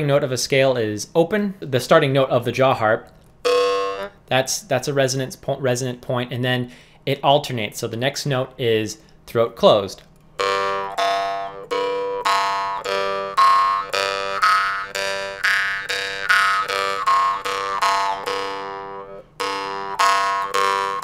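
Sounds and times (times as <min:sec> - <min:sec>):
jaw harp plucking: 0:03.0 - 0:05.1, 0:10.0 - 0:21.0.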